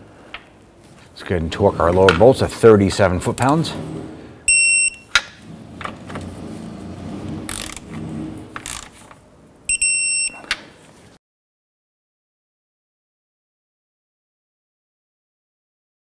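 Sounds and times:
wrench working noise: 3.2s - 9.3s
torque wrench beeping: 4.5s - 5.2s, 9.7s - 10.5s.

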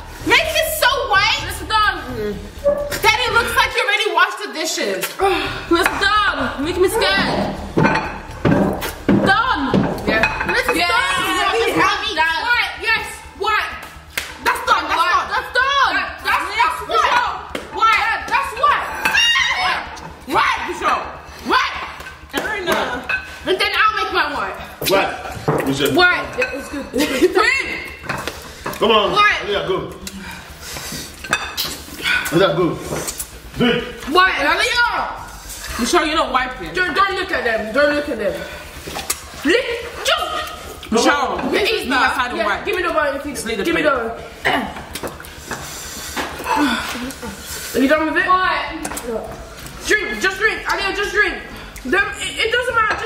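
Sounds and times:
excited voices: 9.2s - 25.3s, 26.0s - 28.2s, 33.5s - 45.2s.

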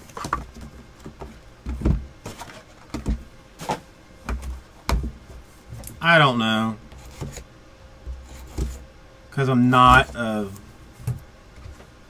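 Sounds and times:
cardboard rustling: 0.0s - 6.0s, 6.9s - 8.9s
knocks and taps on cardboard: 4.3s - 5.2s.

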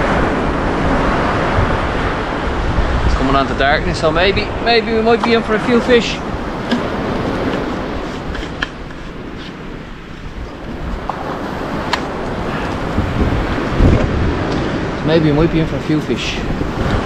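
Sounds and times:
surf on a beach: 0.0s - 17.0s
wind on the microphone: 0.0s - 17.0s
camera handling bump: 6.6s - 9.6s.

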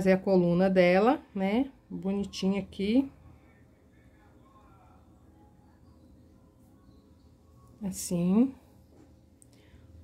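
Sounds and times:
woman speaking: 0.0s - 3.3s, 7.7s - 8.8s
faint steady hum: 0.0s - 10.0s.

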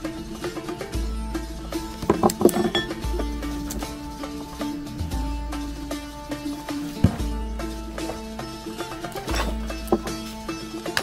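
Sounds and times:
folk music with plucked strings: 0.0s - 11.0s.

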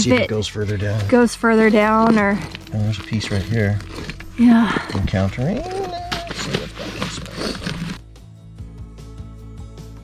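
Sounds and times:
rock hammer scraping and knocking: 0.0s - 8.0s
background music with plucked notes: 0.0s - 10.0s.

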